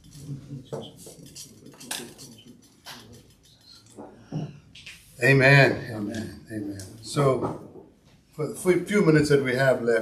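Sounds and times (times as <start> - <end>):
cutlery and crockery clinking: 0.0 - 3.4.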